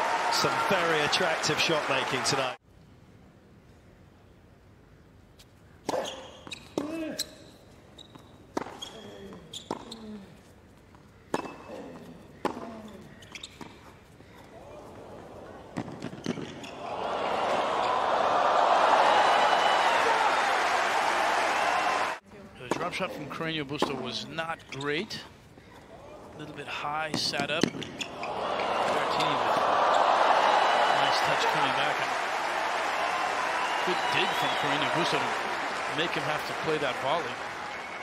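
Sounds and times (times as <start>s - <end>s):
crowd cheering and applauding: 0.0s - 2.6s, 16.8s - 22.2s, 28.2s - 38.0s
tennis ball bouncing: 8.5s - 10.0s, 11.3s - 12.8s.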